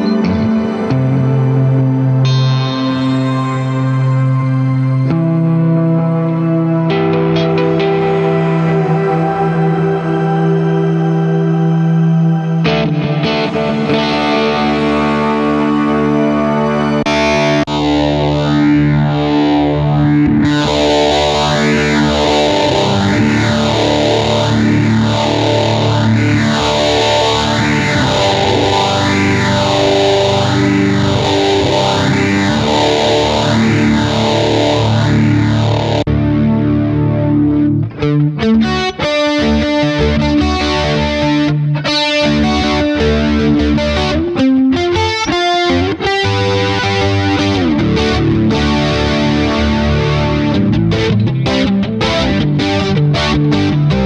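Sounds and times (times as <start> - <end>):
electric guitar with sweeping effect: 0.0 - 54.0.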